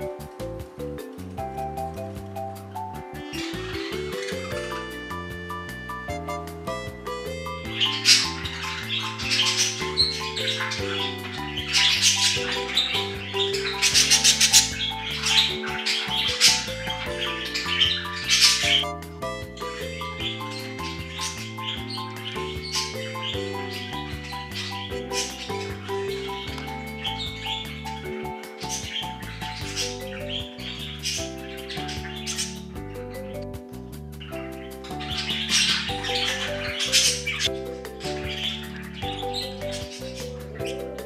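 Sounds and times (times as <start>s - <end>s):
soft background music: 0.0s - 41.0s
budgerigars chirping: 2.0s - 33.5s, 34.2s - 41.0s.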